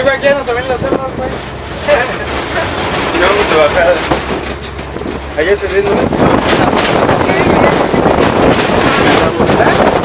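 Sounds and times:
people talking: 0.0s - 4.3s, 5.3s - 10.0s
truck engine rumble: 0.0s - 10.0s.

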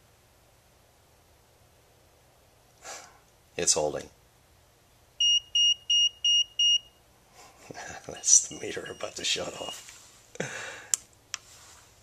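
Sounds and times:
multimeter beeping: 5.2s - 7.0s, 8.3s - 9.8s.

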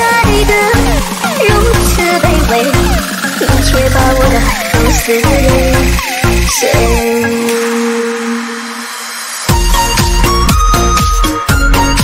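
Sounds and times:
falling synth zaps: 0.0s - 10.0s
rising synth sweep: 0.0s - 11.4s
held synth tones: 0.0s - 11.9s
pulsing bass: 0.0s - 12.0s.

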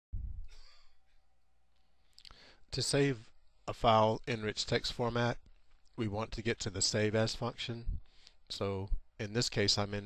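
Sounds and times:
faint steady hum: 0.2s - 10.0s
short breath: 2.2s - 2.7s.

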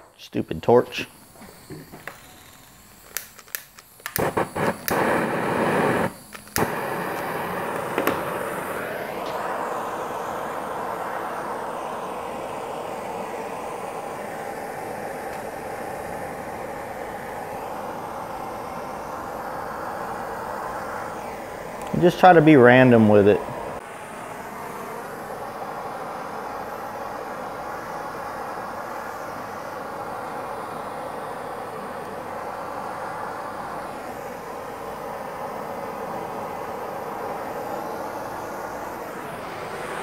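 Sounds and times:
propane torch flame hissing: 0.0s - 40.0s
torch igniter clicks: 1.2s - 9.5s, 14.3s - 16.5s, 21.4s - 22.0s.

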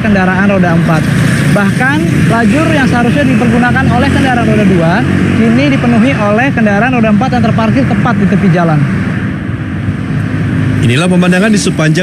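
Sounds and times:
hum of passing vehicles: 0.0s - 12.0s.

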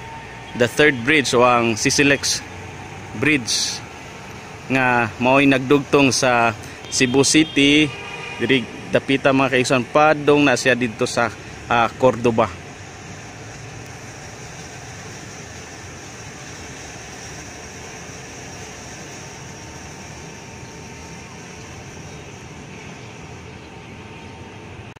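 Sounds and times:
high even hiss: 0.0s - 25.0s
traffic hum: 0.0s - 25.0s.

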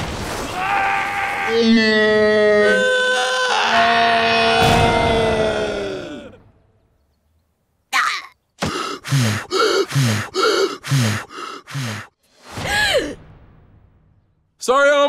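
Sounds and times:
cartoon character screaming: 0.6s - 6.3s.

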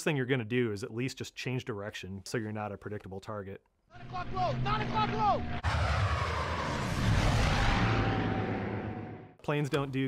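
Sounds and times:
propeller plane passing by: 4.0s - 9.4s.

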